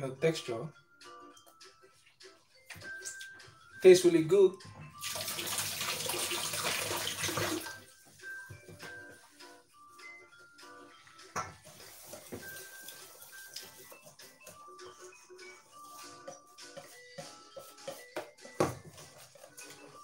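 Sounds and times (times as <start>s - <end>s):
soft background music: 0.0s - 20.0s
water running from a tap: 5.0s - 7.8s, 11.6s - 14.2s.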